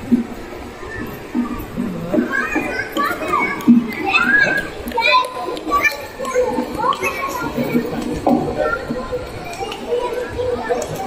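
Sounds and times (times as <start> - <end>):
children talking: 0.0 - 11.0.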